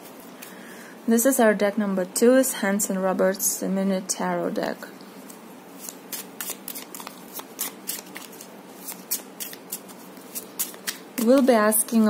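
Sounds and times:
cards being shuffled: 5.2 - 12.0.

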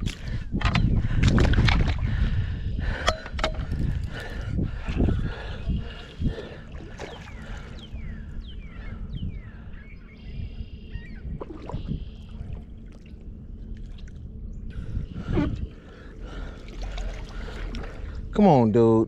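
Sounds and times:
wind rumbling on microphone: 0.0 - 18.4
water splashing at shoreline: 6.3 - 7.8, 16.2 - 18.2.

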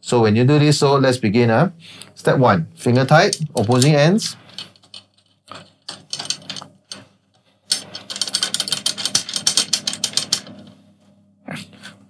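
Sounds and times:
drum tension rods clicking: 2.8 - 7.1, 7.7 - 10.7.

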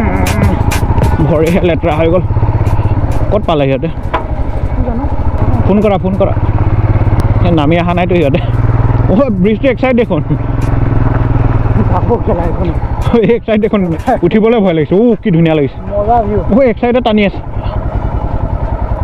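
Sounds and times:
motorcycle engine cruising: 0.0 - 19.0
man talking: 0.5 - 2.3, 11.7 - 17.5.

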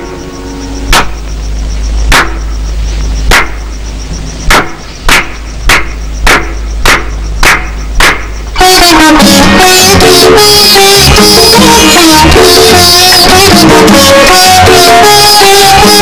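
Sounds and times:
sharp percussion strikes: 0.0 - 2.6, 4.4 - 16.0
low steady hum: 0.0 - 8.6.

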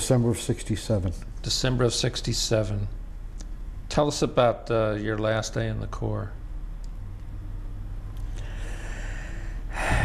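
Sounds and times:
man breathing: 8.2 - 10.0.

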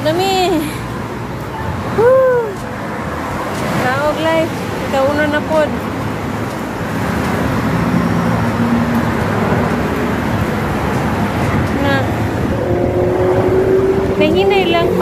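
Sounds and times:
highway traffic rushing: 0.0 - 15.0.

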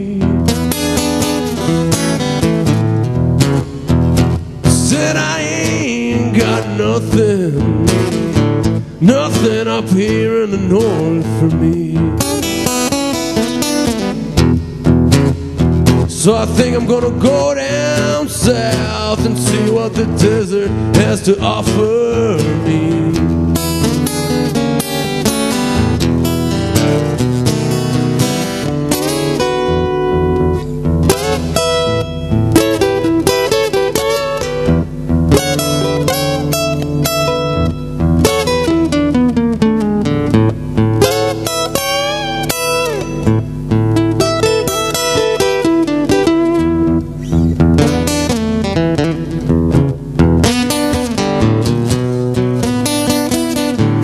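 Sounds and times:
fingerstyle acoustic blues guitar: 0.0 - 54.0.

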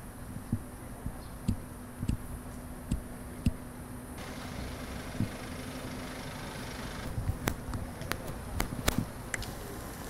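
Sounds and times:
machinery engine hum: 0.0 - 10.0.

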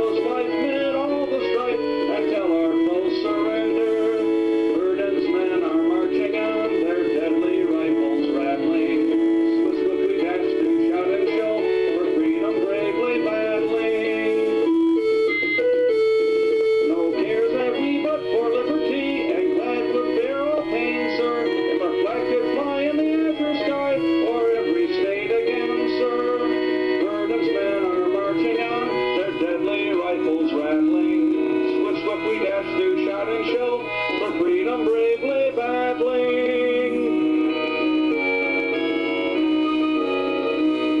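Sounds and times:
man singing: 0.0 - 14.8, 16.8 - 38.8
instrumental backing music: 0.0 - 41.0.

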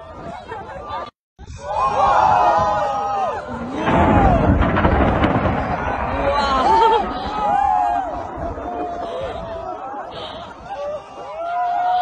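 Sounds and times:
volcano eruption boom: 3.8 - 9.8
sharp cracks: 3.9 - 8.6.

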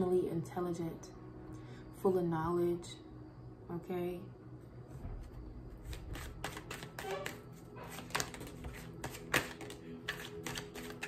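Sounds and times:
cards shuffling and clicking: 5.8 - 11.0.

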